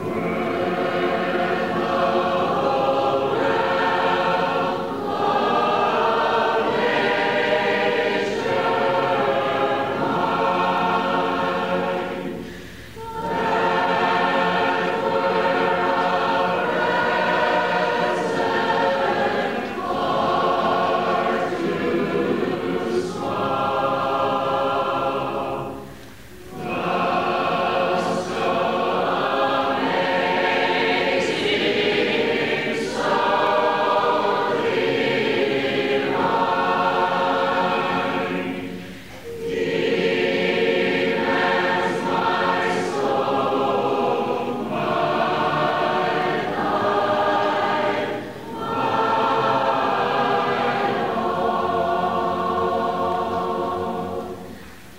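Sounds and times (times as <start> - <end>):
choir singing: 0.0 - 54.9.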